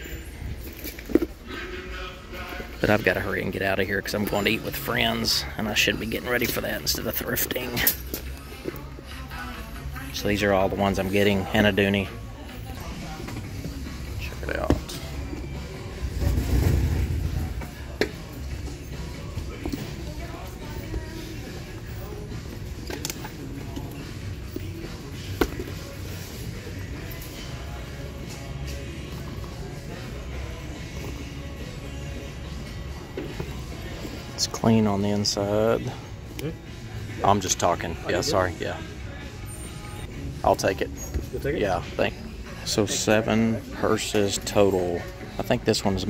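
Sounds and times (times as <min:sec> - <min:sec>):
background music: 0:00.0 - 0:46.0.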